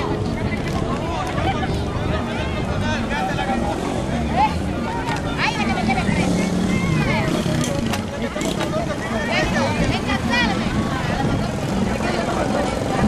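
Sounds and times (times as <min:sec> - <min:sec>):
crowd talking and calling out: 0:00.0 - 0:13.0
motorcycle engines running: 0:00.0 - 0:13.0.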